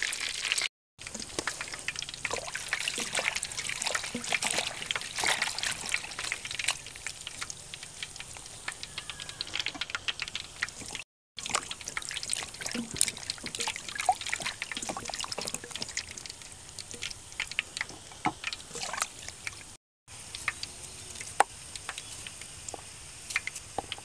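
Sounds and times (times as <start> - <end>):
water trickling and splashing: 0.0 - 24.0.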